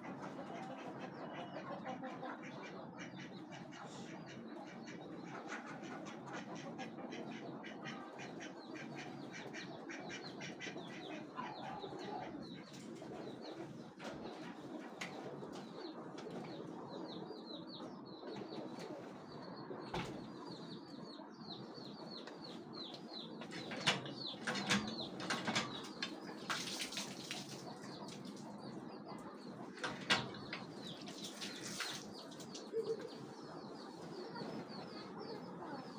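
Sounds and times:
small birds chirping: 0.0s - 35.9s.

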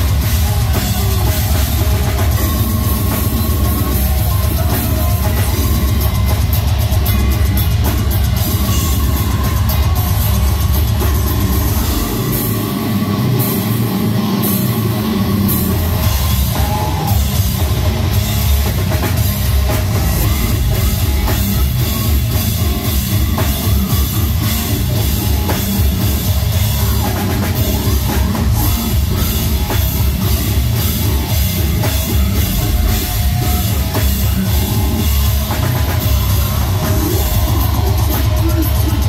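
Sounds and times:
bass guitar: 0.0s - 39.0s
death metal band playing live: 0.0s - 39.0s
distorted guitars: 0.0s - 39.0s
pounding drums and cymbals: 0.0s - 39.0s.

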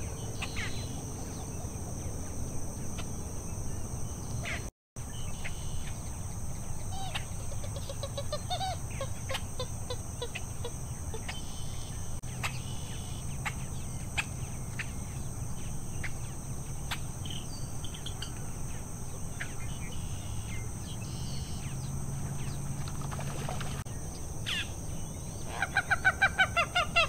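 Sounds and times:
low evenly spaced bird notes: 0.0s - 27.0s.

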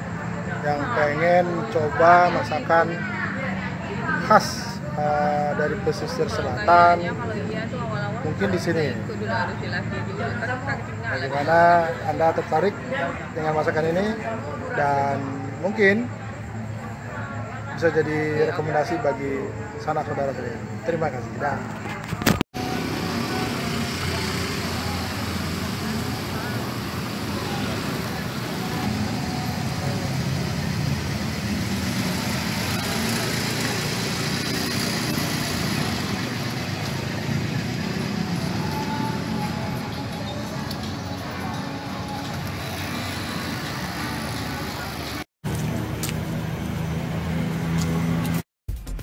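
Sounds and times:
road traffic hum: 0.0s - 48.5s.

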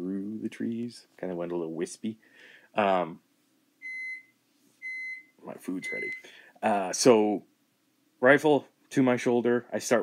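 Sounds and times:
microwave oven beeping: 3.8s - 6.2s.

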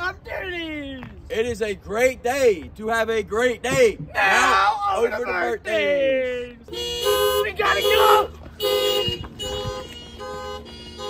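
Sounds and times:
car alarm horn honks: 6.7s - 11.0s
person shouting: 7.3s - 8.3s.

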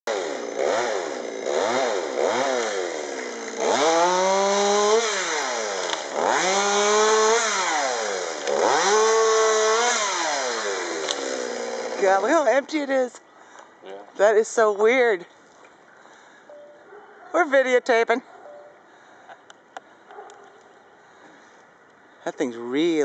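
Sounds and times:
chainsaw revving: 0.1s - 12.5s.

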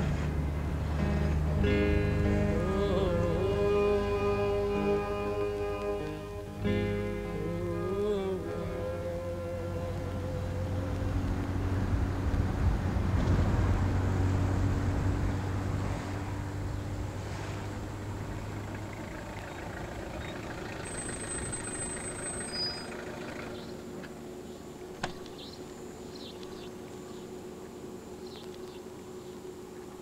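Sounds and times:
car driving past: 0.0s - 6.8s, 8.8s - 25.2s.

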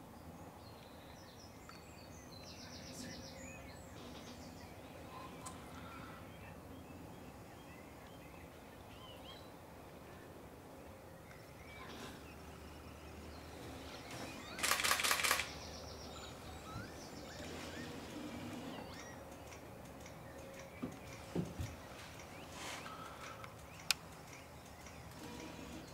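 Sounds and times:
faint high bird chirps: 10.9s - 25.9s
camera shutter clicks: 14.4s - 15.6s.

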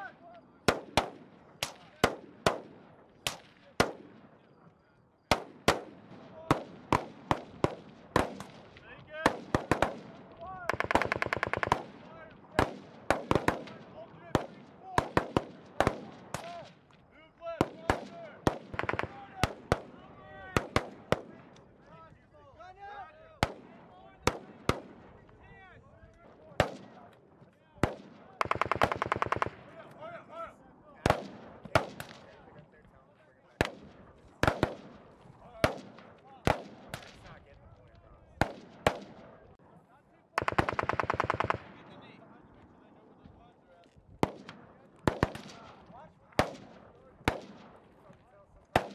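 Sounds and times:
gunshots: 0.6s - 4.4s, 5.3s - 16.9s, 17.6s - 21.7s, 23.4s - 25.4s, 26.2s - 27.2s, 27.8s - 30.2s, 30.9s - 32.5s, 33.6s - 37.5s, 38.4s - 39.7s, 40.4s - 42.4s, 44.2s - 48.9s
machine gun automatic bursts: 10.7s - 11.8s, 28.4s - 29.6s, 40.4s - 41.7s.

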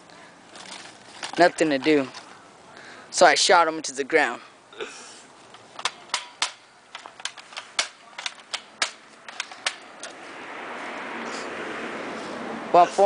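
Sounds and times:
toy rifle clicking: 5.5s - 9.8s.

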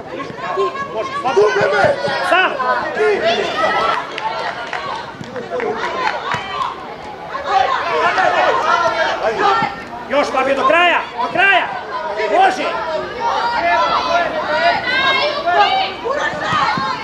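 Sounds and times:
voices talking and calling out: 0.0s - 17.0s.

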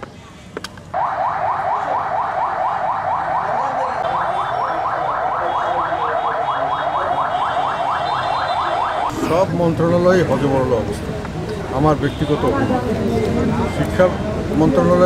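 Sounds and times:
electronic siren yelping: 1.0s - 9.1s.

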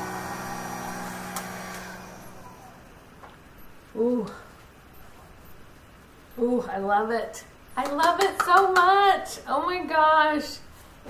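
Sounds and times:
blow dryer running: 0.0s - 3.1s.

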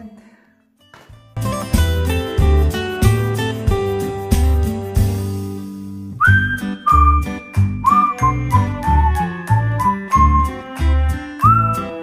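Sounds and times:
steady beat: 1.4s - 5.3s
whistled melody: 6.2s - 12.0s.

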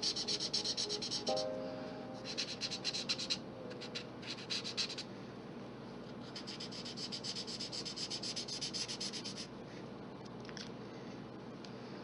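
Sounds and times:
marker rubbing on paper: 0.0s - 1.4s, 2.2s - 5.1s, 6.2s - 9.5s.

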